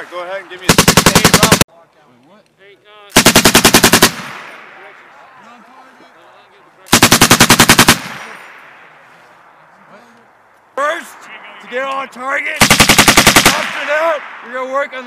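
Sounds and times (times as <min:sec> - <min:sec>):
machine gun bursts echoing: 0:00.7 - 0:01.6, 0:03.2 - 0:04.5, 0:06.9 - 0:08.3, 0:12.6 - 0:13.9.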